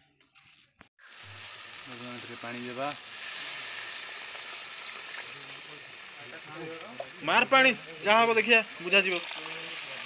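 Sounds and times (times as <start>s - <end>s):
food sizzling in a pan: 1.0s - 10.0s.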